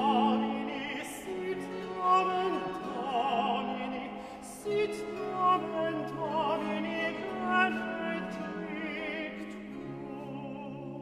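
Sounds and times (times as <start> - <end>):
singer with wide vibrato: 0.0 - 11.0.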